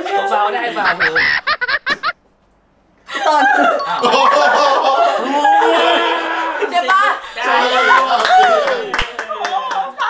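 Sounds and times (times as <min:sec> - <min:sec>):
excited voices calling out: 0:03.1 - 0:08.9
people clapping: 0:06.8 - 0:10.0.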